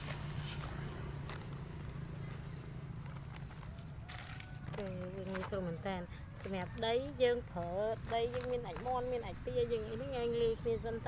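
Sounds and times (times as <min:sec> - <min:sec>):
plastic grow bags rustling: 0:00.4 - 0:09.2.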